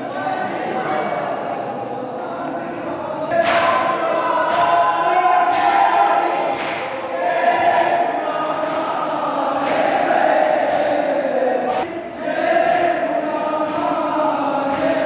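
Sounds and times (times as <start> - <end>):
group chanting a lament: 0.0 - 15.0.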